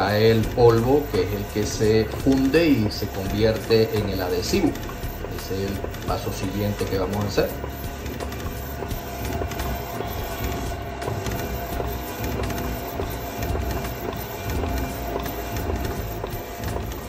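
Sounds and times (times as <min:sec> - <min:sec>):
printer head clicking: 0:00.0 - 0:17.0.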